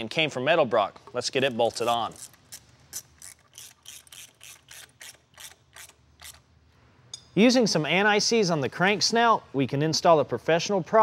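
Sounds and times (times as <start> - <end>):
socket ratchet clicking: 1.8 - 6.4.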